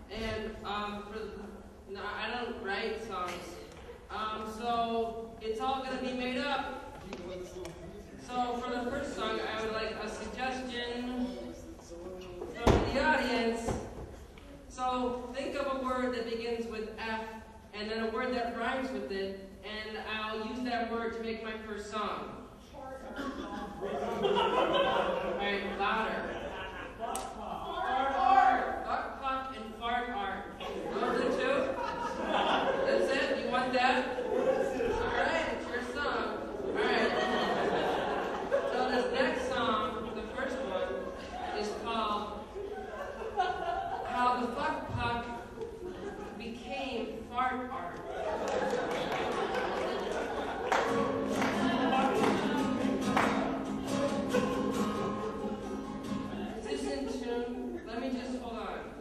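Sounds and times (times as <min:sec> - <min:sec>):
acoustic guitar strumming: 0:50.8 - 0:57.2.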